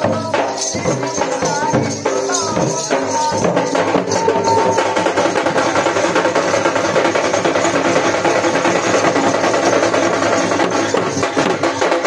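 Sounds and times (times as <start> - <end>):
folk drumming on barrel drums: 0.0 - 12.0
percussion: 0.0 - 12.0.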